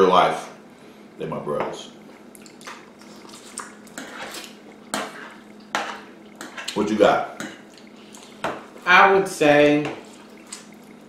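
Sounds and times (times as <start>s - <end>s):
fork scraping a plate: 3.2s - 6.8s.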